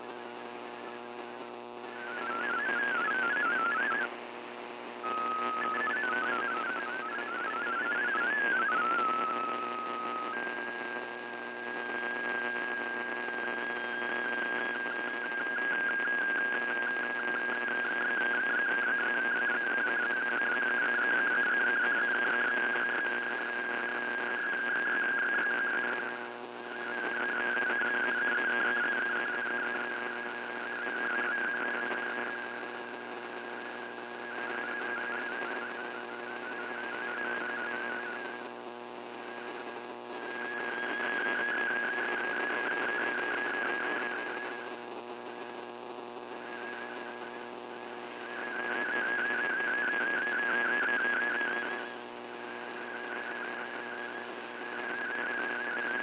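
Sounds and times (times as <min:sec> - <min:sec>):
radio static: 0:00.0 - 0:56.0
steady fluttering radio tone: 0:00.0 - 0:56.0
warbling data tones: 0:01.8 - 0:04.1, 0:05.0 - 0:38.5, 0:39.2 - 0:44.7, 0:46.3 - 0:56.0.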